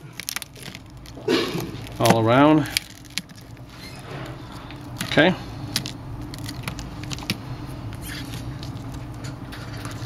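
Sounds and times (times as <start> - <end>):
phone screen glass crackling: 0.0 - 7.4
steady low hum: 0.0 - 10.0.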